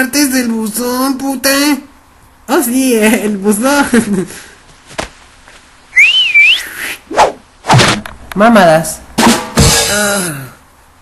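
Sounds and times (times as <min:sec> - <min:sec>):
rising and dipping whistle: 0:05.9 - 0:06.9.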